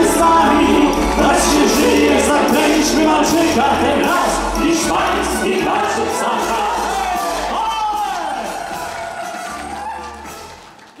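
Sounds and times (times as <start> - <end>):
person singing: 0.0 - 8.7
musical accompaniment: 0.0 - 11.0.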